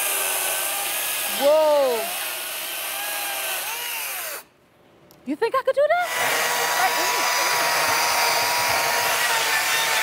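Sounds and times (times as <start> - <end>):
chainsaw revving: 6.0 - 10.0.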